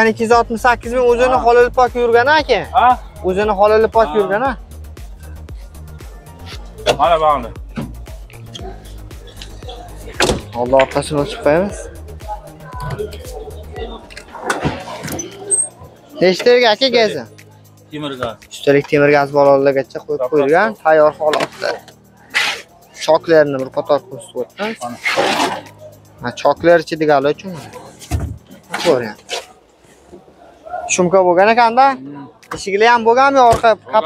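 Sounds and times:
car trunk latch clicks and knocks: 10.2 - 10.5.

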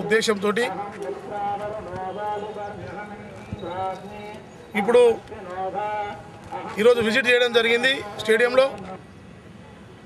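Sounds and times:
narration: 0.0 - 9.1.

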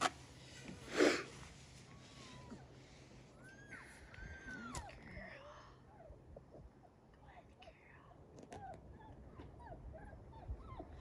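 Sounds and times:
puppy whimpering: 8.5 - 11.0.

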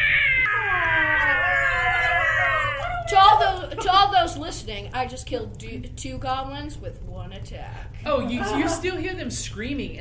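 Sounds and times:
person screaming high-pitched: 0.0 - 3.4.

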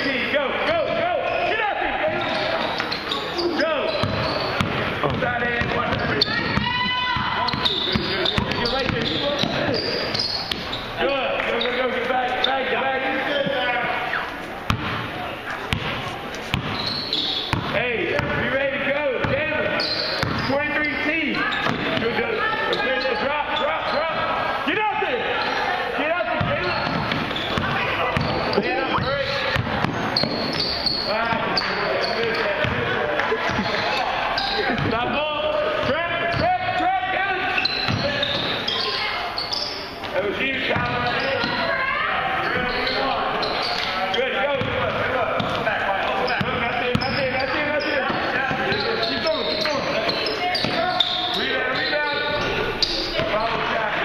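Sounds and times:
basketball bouncing on wood floor: 4.0 - 9.8, 14.7 - 15.0, 15.7 - 16.8, 17.5 - 18.4, 20.2 - 20.4, 21.6 - 22.2, 26.4 - 30.6.

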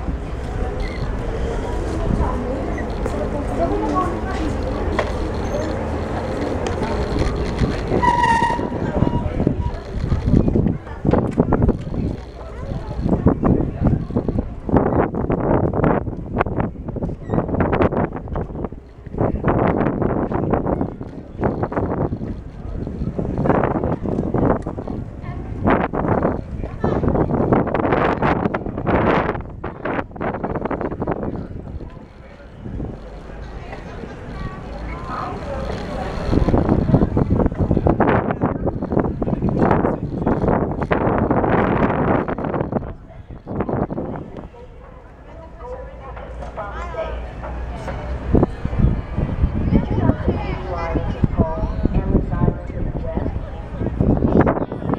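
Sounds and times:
bicycle rumbling on walkway: 0.0 - 54.9
pedestrians' voices: 0.0 - 54.9
wind on microphone: 0.0 - 54.9.

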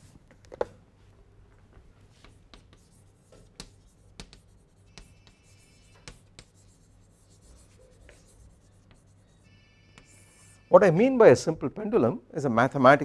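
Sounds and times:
chalk tapping and scraping on blackboard: 2.1 - 10.7.

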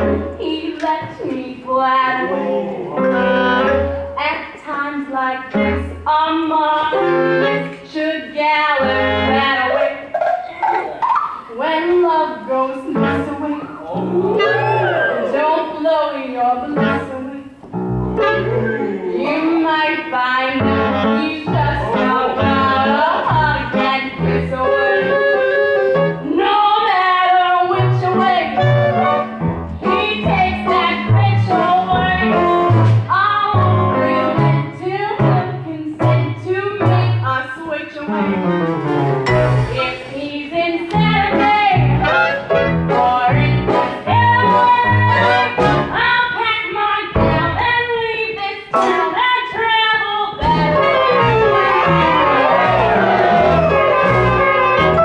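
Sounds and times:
orchestra playing show tune: 13.8 - 15.4, 18.1 - 19.0, 38.3 - 40.2, 43.8 - 45.9, 50.4 - 55.0
regular bass beat: 17.8 - 19.2, 38.5 - 40.1, 40.9 - 46.0, 47.2 - 47.7, 50.4 - 55.0.

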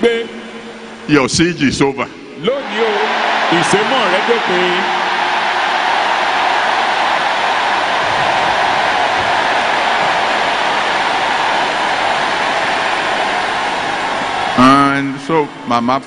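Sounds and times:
crowd cheering and shouting: 2.4 - 15.6.

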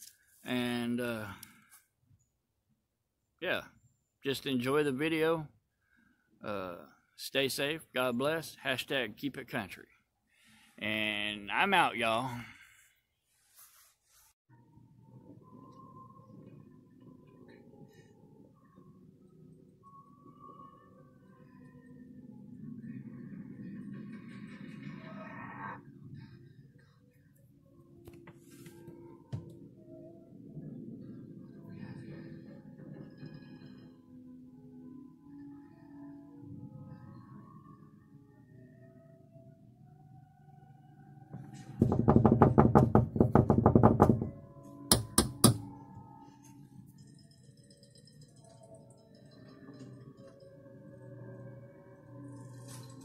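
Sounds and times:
rapid knocks: 41.4 - 45.7.

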